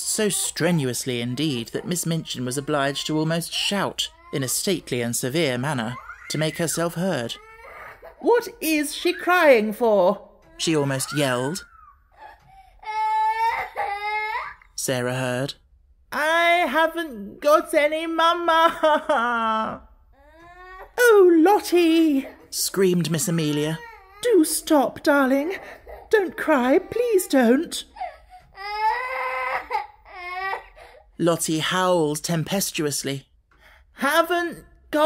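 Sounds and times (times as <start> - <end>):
man imitating child wailing: 0.0 - 7.4, 10.6 - 12.0
man narrating: 0.0 - 7.6, 8.2 - 11.8, 14.7 - 19.8, 21.0 - 28.0, 31.2 - 33.3, 34.0 - 35.0
small child crying: 5.8 - 8.2, 10.9 - 14.6.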